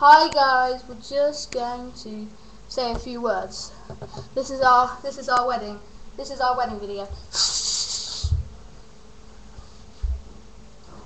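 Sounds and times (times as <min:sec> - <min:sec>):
faint buzzing hum: 0:00.0 - 0:11.0
short low thump: 0:08.2 - 0:08.6.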